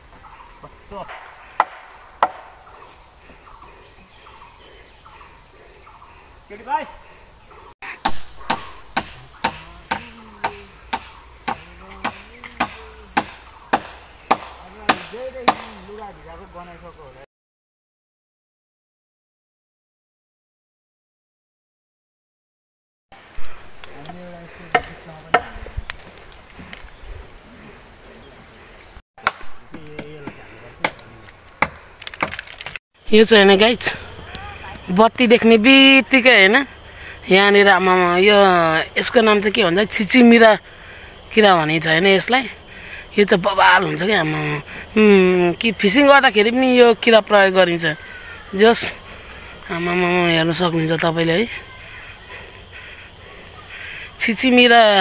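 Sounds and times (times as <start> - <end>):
high insect hiss: 0.0 - 17.3, 23.2 - 55.0
sharp wooden strikes: 1.0 - 2.6, 7.9 - 15.8, 24.7 - 25.6, 29.2 - 32.8
sharp wooden knocks: 1.1 - 2.6, 8.0 - 15.7, 24.7 - 25.6, 29.2 - 31.0, 31.6 - 32.8.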